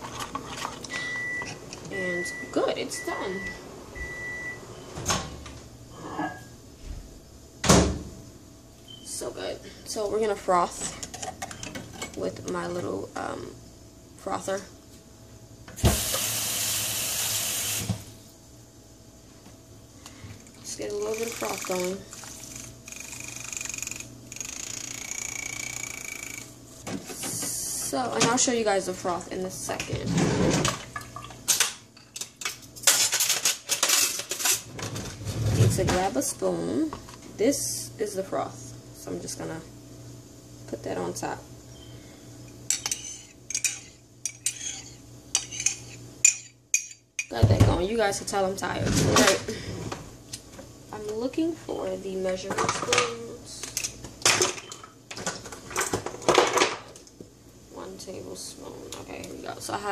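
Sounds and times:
kitchen utensils clattering: 29.8s - 36.2s, 42.7s - 47.9s, 48.8s - 50.0s, 52.3s - 56.9s
cups and utensils clinking: 42.7s - 47.3s.

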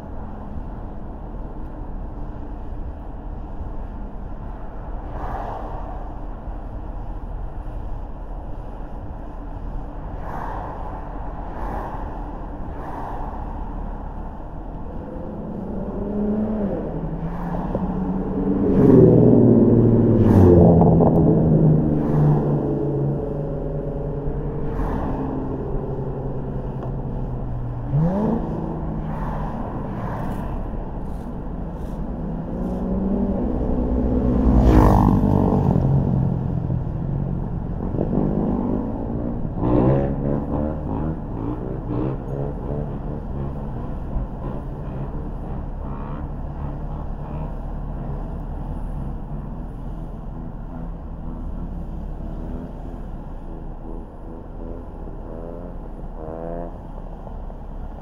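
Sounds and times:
car engine hum: 0.0s - 58.0s
road noise: 0.0s - 58.0s.

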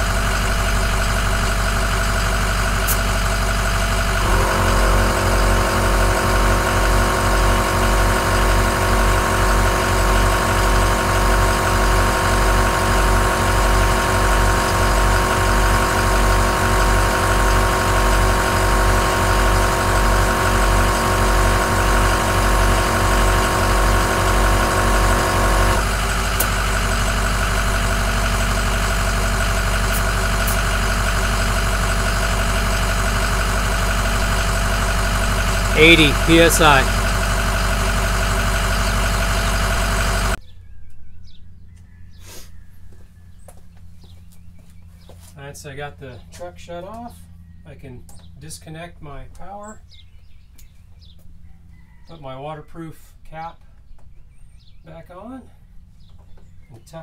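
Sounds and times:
air compressor running: 0.0s - 40.4s
truck engine idling: 0.0s - 40.4s.

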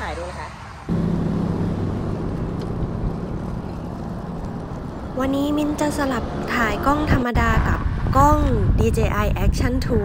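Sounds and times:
road noise: 0.0s - 10.0s
low hum: 0.9s - 6.8s
wind noise: 0.9s - 10.0s.

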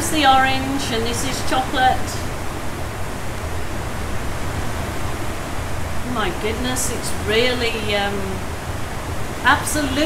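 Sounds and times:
torrential rain pouring: 0.0s - 10.0s.

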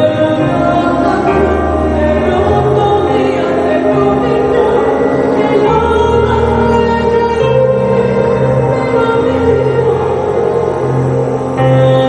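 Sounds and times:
choral singing: 0.0s - 12.0s
sustained low accompaniment: 0.0s - 12.0s.

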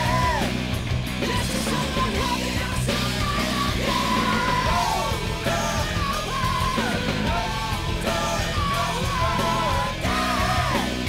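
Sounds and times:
man shouting vocals: 0.0s - 0.6s, 1.3s - 11.0s
hard rock band playing: 0.0s - 11.0s.

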